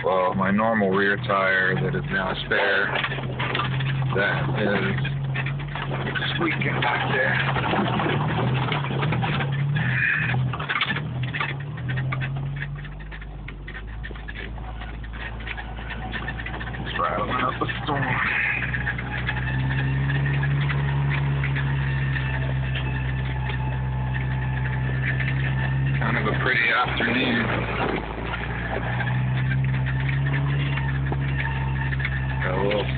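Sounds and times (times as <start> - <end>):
car engine running: 0.0 - 32.9
clicks and rattles: 0.4 - 32.9.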